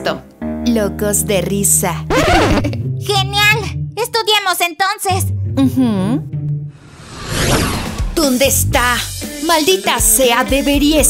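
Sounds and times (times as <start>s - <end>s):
light background music: 0.0s - 6.7s, 7.8s - 11.0s
whoosh transition effect: 6.7s - 8.4s.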